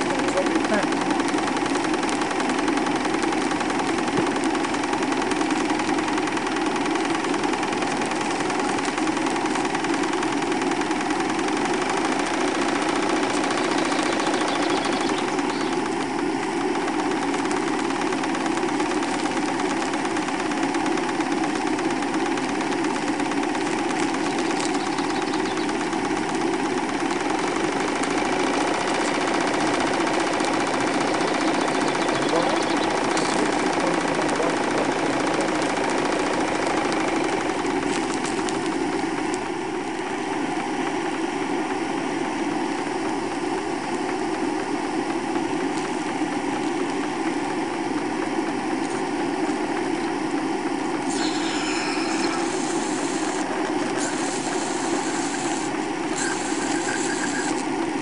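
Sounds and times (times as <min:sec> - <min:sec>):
model steam engine running: 0:00.0 - 0:39.5, 0:51.0 - 0:58.0.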